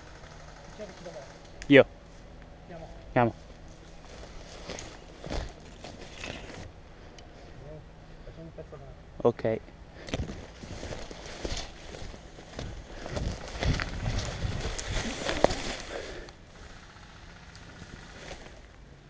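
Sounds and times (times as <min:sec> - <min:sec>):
grass rustling against camera: 0:02.0 - 0:07.6, 0:10.0 - 0:17.0, 0:17.6 - 0:18.7
running footsteps: 0:03.4 - 0:06.7, 0:10.0 - 0:16.4.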